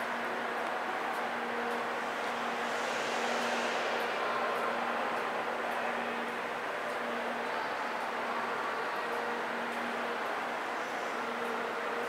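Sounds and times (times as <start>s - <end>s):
steady machinery hum: 0.0s - 12.0s.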